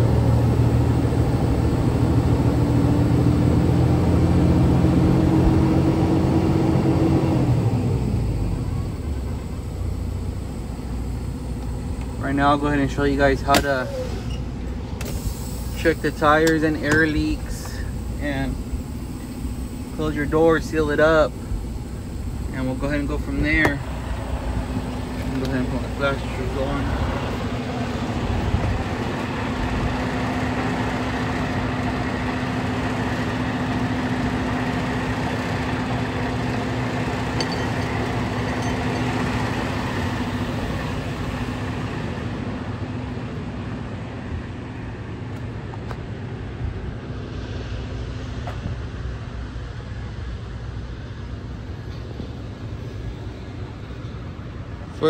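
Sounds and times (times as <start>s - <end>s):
diesel truck engine idling: 0.0s - 55.0s.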